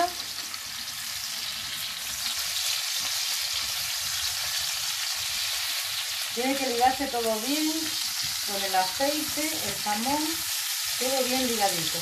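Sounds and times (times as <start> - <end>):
food frying in oil sizzling: 0.0 - 12.0.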